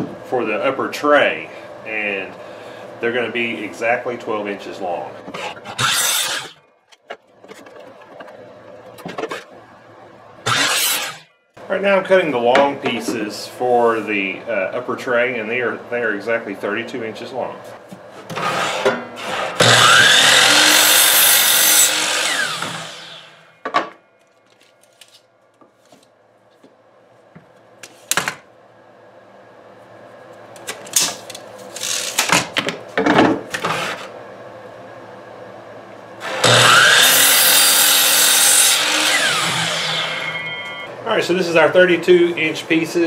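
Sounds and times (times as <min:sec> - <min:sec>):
miter saw cutting wood: 0:05.3 - 0:06.6, 0:10.4 - 0:11.3, 0:18.3 - 0:23.5, 0:36.2 - 0:40.9.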